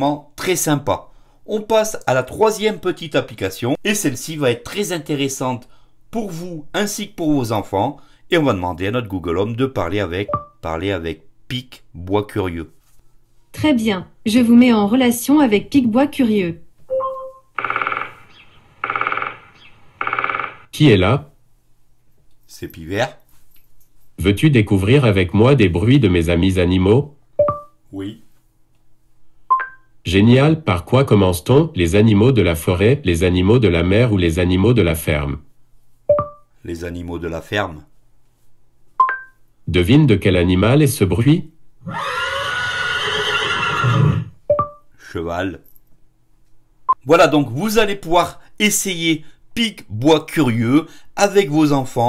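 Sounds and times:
short electronic beep: 16.9 - 17.5
woodpecker drumming: 17.6 - 20.7
horse whinny through speaker: 41.8 - 44.4.

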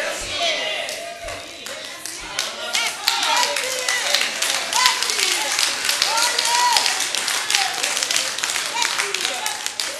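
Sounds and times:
congregation clapping: 0.8 - 9.9.

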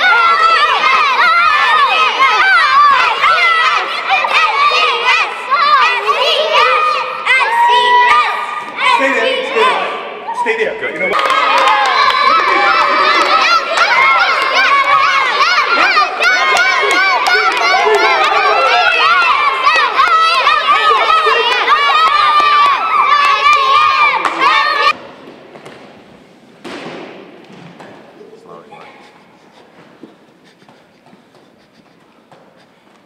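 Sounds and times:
children cheering and shouting: 0.0 - 10.6, 11.2 - 25.0.

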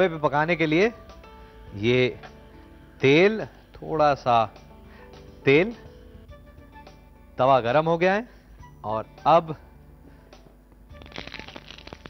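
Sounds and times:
oil sizzling and crackling: 11.0 - 12.0.

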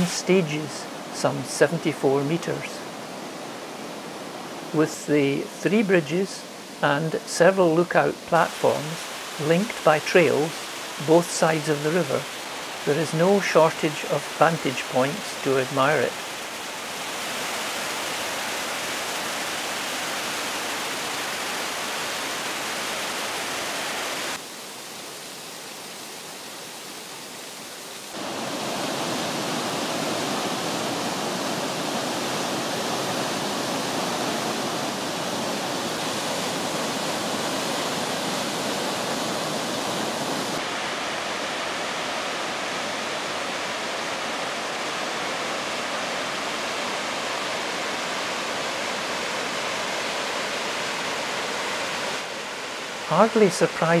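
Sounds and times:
waterfall rushing: 0.0 - 54.0.

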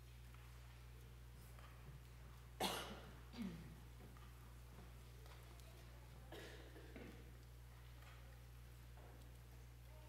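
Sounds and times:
person coughing: 2.6 - 3.7, 6.3 - 7.1.

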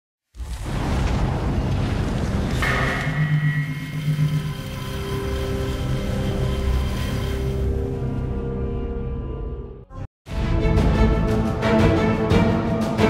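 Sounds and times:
rumbling whoosh: 0.3 - 7.3
sudden hit: 0.4 - 4.8.

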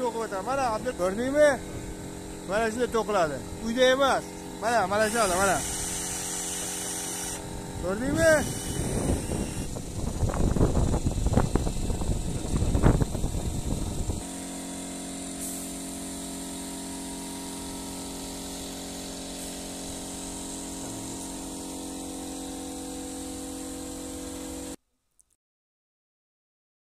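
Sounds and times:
rough construction noise: 0.0 - 24.8
steady motor hum: 0.0 - 24.8.

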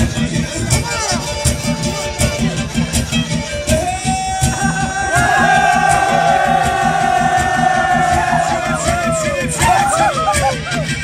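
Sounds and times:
fast folk dance music: 0.0 - 11.0
men's voices holding long cry: 4.0 - 10.8
dancers shouting: 4.3 - 11.0.

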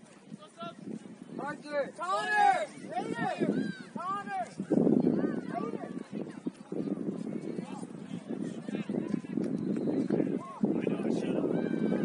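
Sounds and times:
constant rushing noise: 0.0 - 12.0
voices calling out: 1.4 - 12.0.

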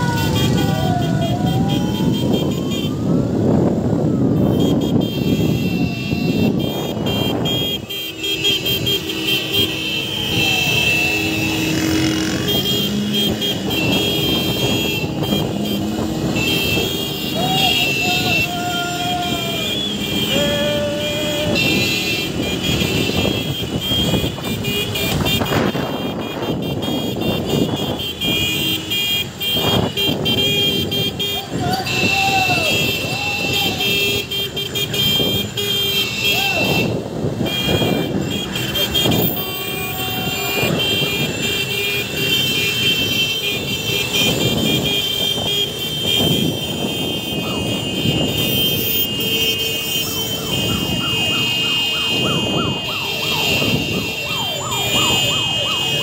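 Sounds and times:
car horns honking: 0.0 - 3.0, 4.2 - 56.0
engine noise: 7.0 - 25.9
people shouting: 9.9 - 13.1, 15.1 - 22.6, 31.3 - 34.2, 36.2 - 36.9, 38.6 - 41.1
siren-like gliding tone: 10.0 - 22.4, 50.0 - 56.0.

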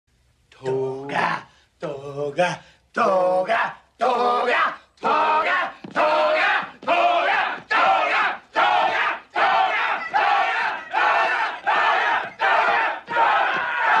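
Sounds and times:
crowd chanting in unison: 4.0 - 14.0.

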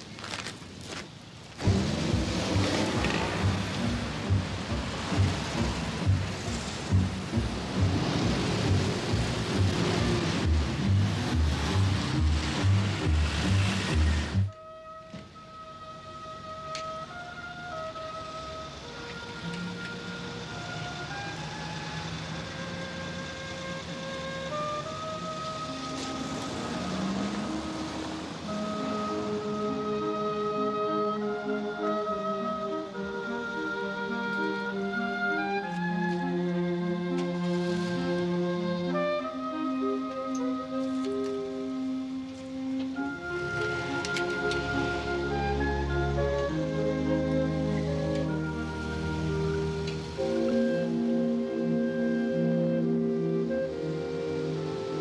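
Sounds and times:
dense city traffic: 0.0 - 55.0
soft music with held notes: 1.6 - 55.0.

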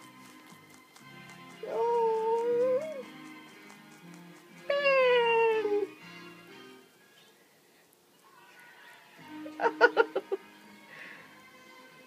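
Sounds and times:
background music: 0.0 - 7.4, 8.3 - 12.0.

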